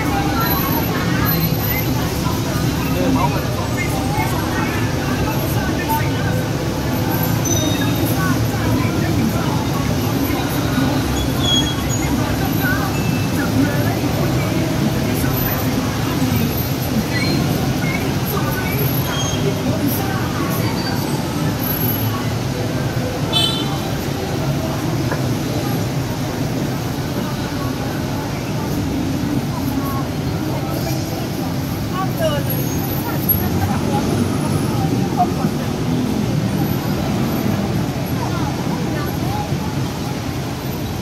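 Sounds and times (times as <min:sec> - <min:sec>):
traffic rumble: 0:00.0 - 0:41.0
voices of passers-by: 0:00.0 - 0:41.0.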